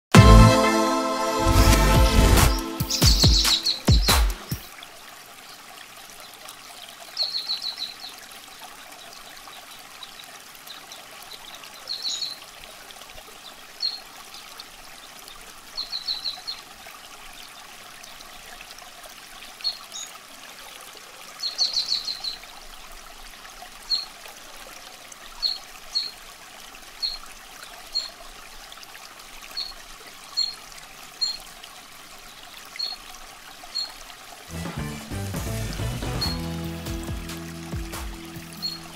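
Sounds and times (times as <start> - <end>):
water trickling: 1.4 - 38.9
high bird chirps: 2.5 - 4.7, 38.1 - 38.9.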